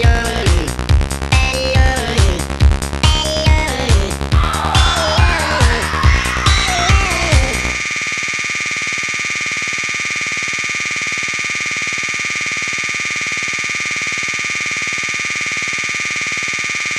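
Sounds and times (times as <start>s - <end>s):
buzzing synthesizer drone: 4.2s - 16.9s.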